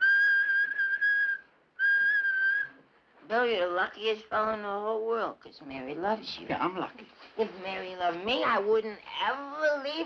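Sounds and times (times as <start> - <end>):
high steady whistle: 0.0 - 2.8.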